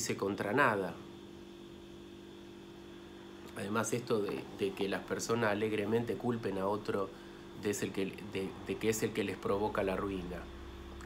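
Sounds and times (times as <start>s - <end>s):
low hum with constant tones: 0.0s - 11.0s.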